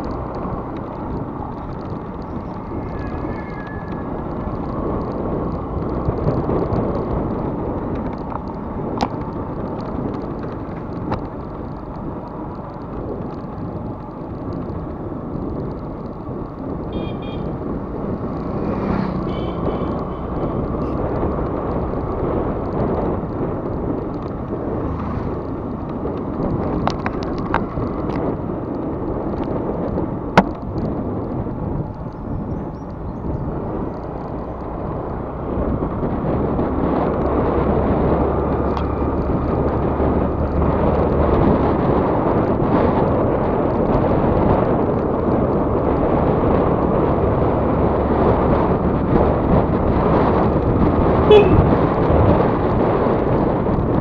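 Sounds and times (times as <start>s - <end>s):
road noise: 0.0s - 54.0s
wind buffeting microphone: 0.0s - 54.0s.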